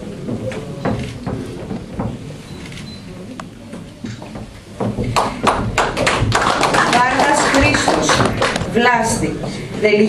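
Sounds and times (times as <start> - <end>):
audience applauding: 5.1 - 8.8.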